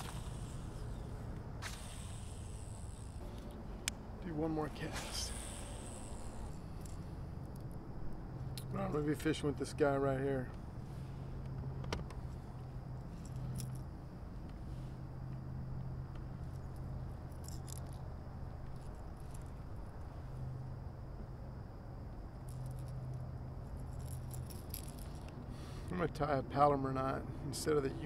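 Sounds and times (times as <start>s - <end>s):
low hum: 0.0s - 25.8s
fishing tackle clicks and rattles: 23.8s - 25.3s.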